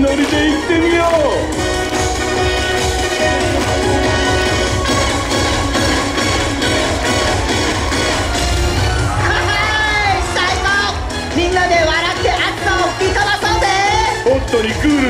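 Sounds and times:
upbeat dance music: 0:00.0 - 0:15.0.

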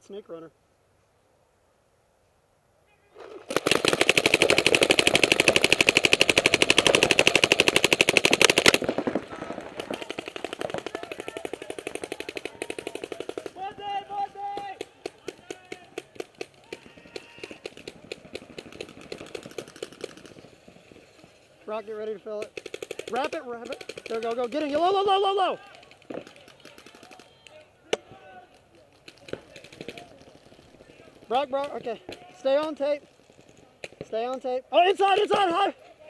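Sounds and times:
paintball markers firing rapidly: 0:03.4 - 0:20.6, 0:22.3 - 0:25.0, 0:25.6 - 0:27.3, 0:28.8 - 0:34.3.

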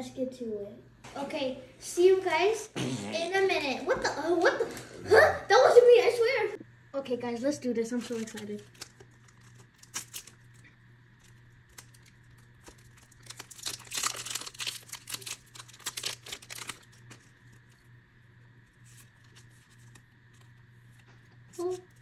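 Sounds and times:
faint steady hum: 0:00.0 - 0:22.0
foil wrapper tearing and crinkling: 0:07.9 - 0:17.8, 0:18.6 - 0:22.0.

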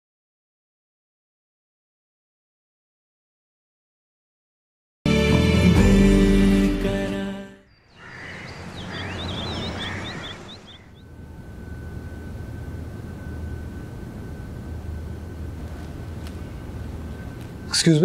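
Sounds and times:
birds chirping: 0:07.7 - 0:12.4
city background noise: 0:07.7 - 0:18.0
low hum: 0:07.8 - 0:18.0
steady high-pitched tone: 0:08.3 - 0:18.0.

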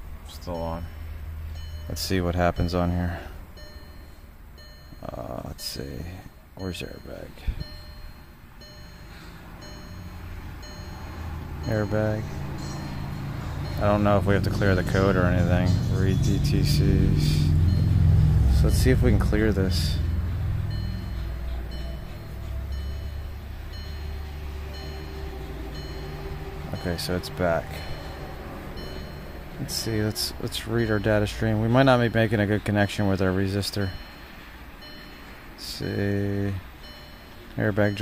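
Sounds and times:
car warning chime: 0:00.0 - 0:38.0
workshop background rumble: 0:00.0 - 0:38.0
low hum: 0:07.3 - 0:32.6.

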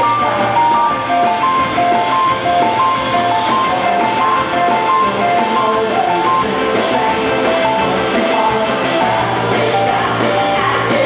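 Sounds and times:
fast keyboard melody: 0:00.0 - 0:11.0
indie rock band playing live: 0:00.0 - 0:11.0.

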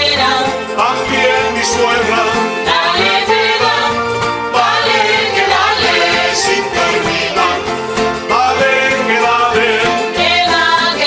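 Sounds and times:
person singing: 0:00.0 - 0:03.9, 0:04.6 - 0:11.0
guitars strummed together: 0:00.0 - 0:11.0.

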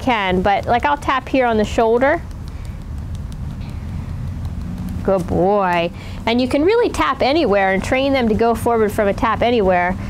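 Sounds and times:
low steady rumble: 0:00.0 - 0:10.0
faint ticks: 0:01.8 - 0:05.1.

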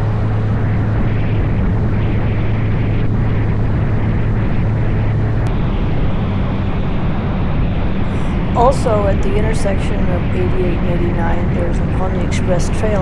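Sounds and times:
motorcycle engine hum: 0:00.0 - 0:13.0
road noise: 0:00.0 - 0:13.0
rushing wind: 0:00.0 - 0:13.0.

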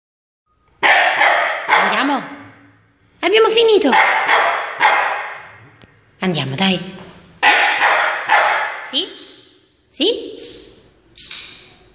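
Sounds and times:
dog barking with echo: 0:00.8 - 0:02.4, 0:03.8 - 0:05.6, 0:07.4 - 0:09.2.

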